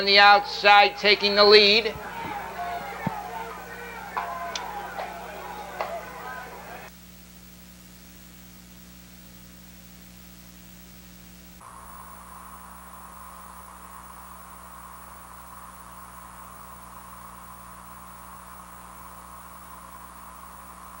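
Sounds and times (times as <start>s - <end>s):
tape hiss: 0.0s - 21.0s.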